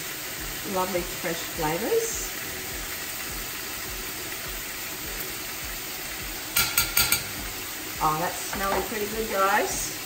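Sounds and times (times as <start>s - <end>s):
food sizzling in a pan: 0.0s - 10.0s.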